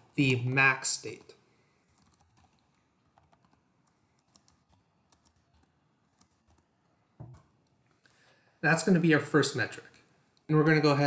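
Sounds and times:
faint keyboard typing: 0:01.1 - 0:08.2.

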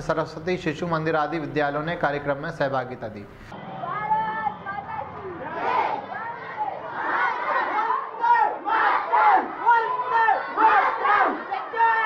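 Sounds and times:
crowd of children shouting slogans: 0:03.6 - 0:12.0.

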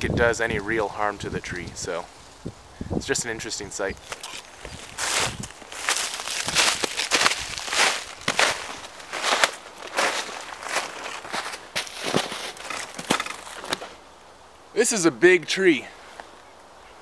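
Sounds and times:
footsteps crunching through snow: 0:04.0 - 0:14.0.

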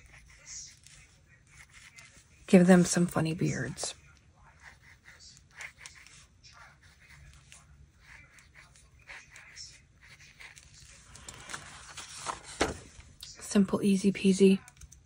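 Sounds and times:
marker scratching on paper: 0:00.0 - 0:11.1
paper rustle or knock: 0:11.3 - 0:13.0.

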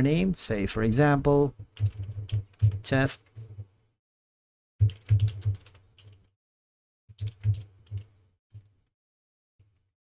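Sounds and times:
keyboard typing: 0:01.6 - 0:03.6, 0:04.8 - 0:06.3, 0:07.1 - 0:08.7.

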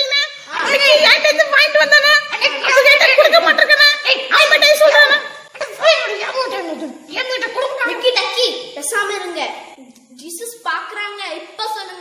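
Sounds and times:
high-pitched puppet voice chattering: 0:00.0 - 0:08.3.

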